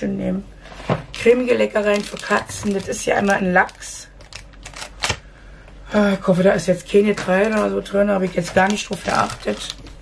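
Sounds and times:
plastic packaging crinkling: 0:01.1 - 0:05.2, 0:07.0 - 0:10.0.

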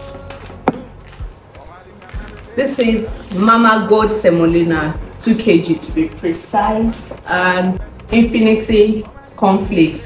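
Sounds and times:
sharp knock: 0:00.6 - 0:00.9.

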